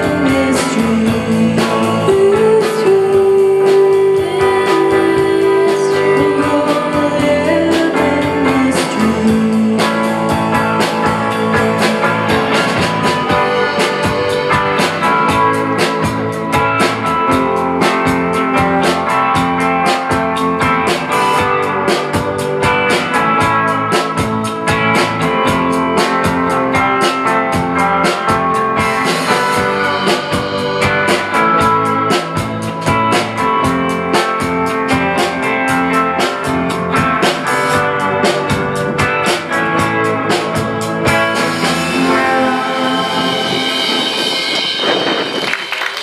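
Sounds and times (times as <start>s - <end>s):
drum kit beat: 0.0s - 46.0s
electric bass: 0.0s - 46.0s
electric guitar: 0.0s - 46.0s.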